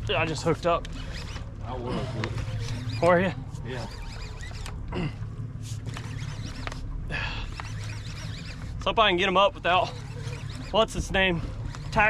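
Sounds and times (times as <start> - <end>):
boat engine low hum: 0.0 - 12.0.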